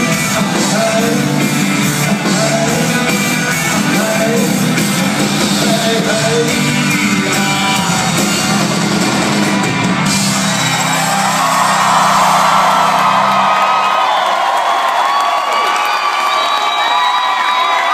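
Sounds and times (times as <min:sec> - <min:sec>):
crowd cheering and whooping: 0:07.1 - 0:17.9.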